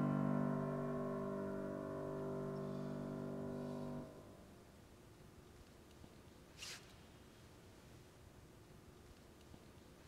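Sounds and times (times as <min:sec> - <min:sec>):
piano chord ringing: 0:00.0 - 0:04.5.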